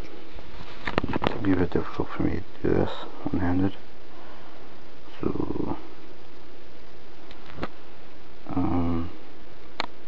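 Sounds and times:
steady background hiss: 0.0 - 10.0
low throaty purr: 8.5 - 9.2.

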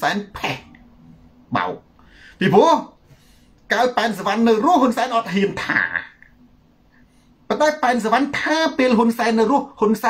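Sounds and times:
man speaking: 0.0 - 0.8, 1.5 - 3.0, 3.7 - 6.4, 7.5 - 10.0.

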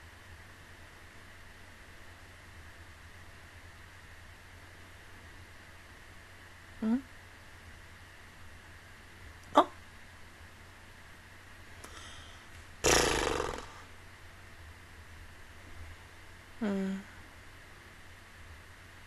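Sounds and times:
woman's voice catching: 6.8 - 7.0, 16.6 - 17.1
woman humming: 6.8 - 7.1, 16.6 - 17.2
woman exhaling breathily: 11.8 - 12.5.

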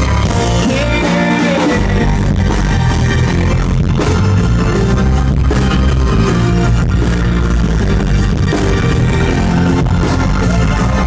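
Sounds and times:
man singing: 0.0 - 2.3
electric guitar: 0.0 - 11.0
live rock band playing: 0.0 - 11.0.

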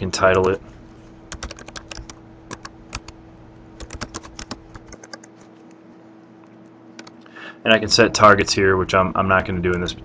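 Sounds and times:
faint steady hum: 0.0 - 10.0
keyboard typing: 1.3 - 3.2, 3.8 - 5.8, 7.0 - 7.3.

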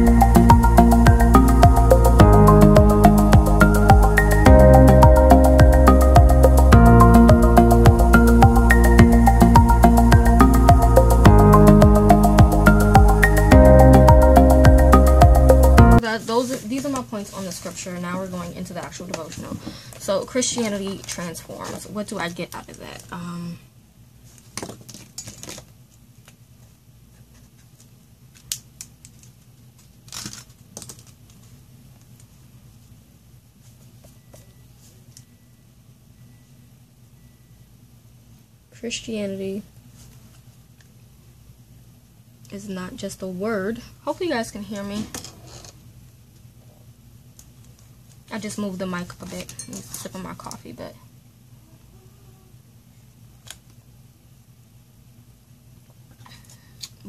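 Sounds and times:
steady low hum: 0.0 - 24.2
paper rustling across page: 16.2 - 18.4.

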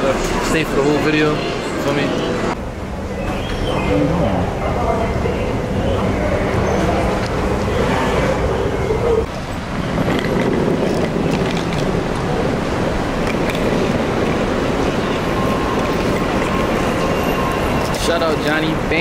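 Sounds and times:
traffic passing: 0.0 - 19.0.

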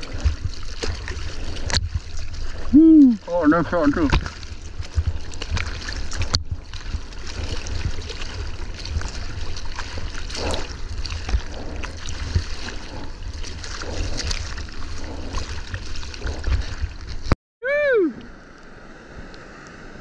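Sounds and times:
water splashing over surfboard: 0.0 - 17.4
low rumble of water: 0.0 - 20.0.

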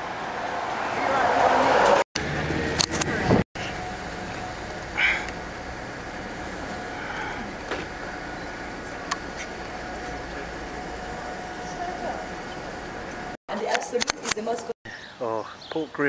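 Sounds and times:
distant city traffic hum: 0.0 - 16.0.

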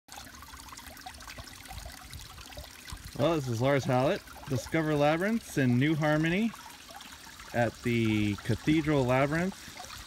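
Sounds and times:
water drips: 0.1 - 10.0
water trickling from fountain: 0.1 - 10.0.

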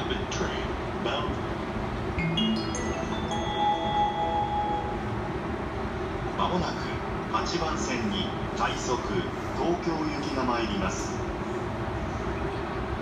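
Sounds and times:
station background noise: 0.0 - 13.0
rising electronic chime: 2.2 - 5.2.

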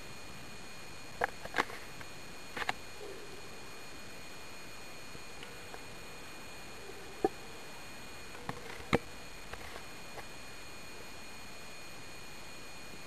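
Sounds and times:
faint high whine: 0.0 - 13.0.

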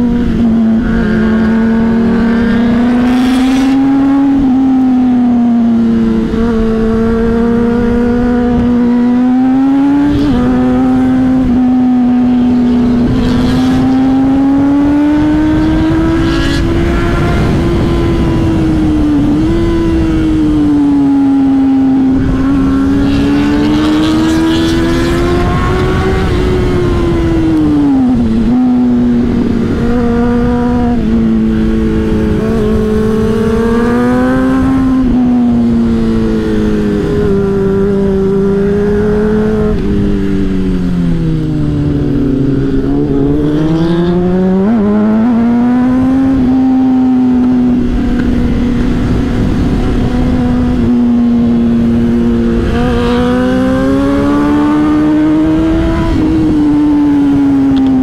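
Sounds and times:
motorcycle engine while riding: 0.0 - 58.0
wind rushing over microphone: 0.0 - 58.0.

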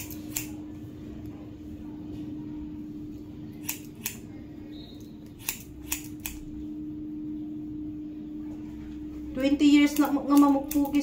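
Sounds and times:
scissors snipping hair: 0.0 - 0.6, 3.5 - 4.3, 5.3 - 6.5, 9.8 - 11.0.

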